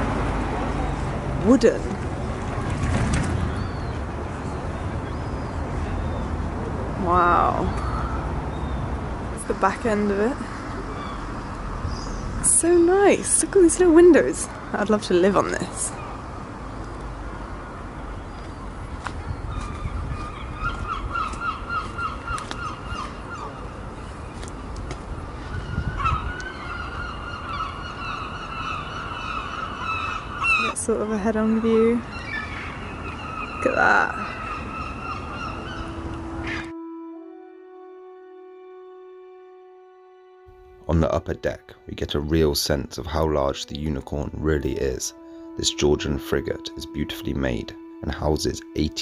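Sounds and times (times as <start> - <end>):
low rumble of wind on microphone: 0.0 - 36.8.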